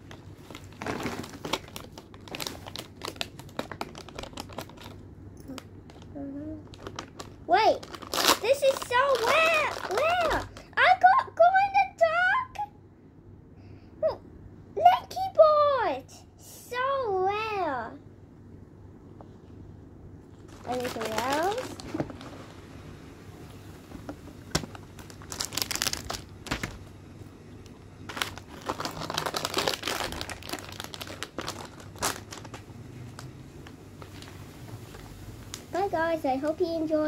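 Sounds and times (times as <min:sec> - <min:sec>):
foil packaging crackling: 0:00.0 - 0:10.8, 0:20.4 - 0:22.4, 0:24.5 - 0:26.9, 0:28.0 - 0:33.3, 0:34.0 - 0:34.4.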